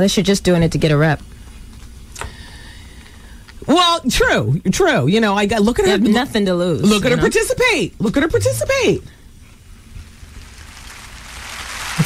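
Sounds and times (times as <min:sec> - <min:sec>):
hiss-like noise: 0:10.1 - 0:12.0.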